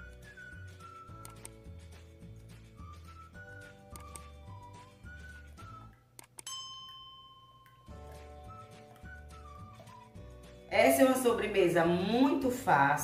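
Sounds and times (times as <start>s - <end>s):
whistle-like melody with bass: 0.0s - 6.1s, 7.9s - 10.7s
quick clicks: 1.2s - 1.6s, 3.9s - 4.3s, 5.9s - 6.5s
bell-like ding: 6.4s - 8.0s.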